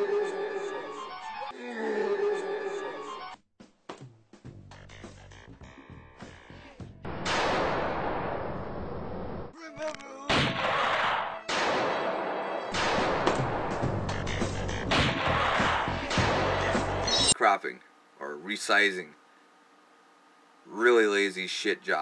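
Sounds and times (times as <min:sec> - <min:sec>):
loud blasts: 0:07.1 - 0:09.4, 0:10.3 - 0:14.0.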